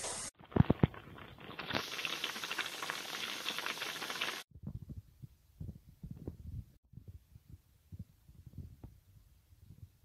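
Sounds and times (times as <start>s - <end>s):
food sizzling in a pan: 0.0s - 4.5s.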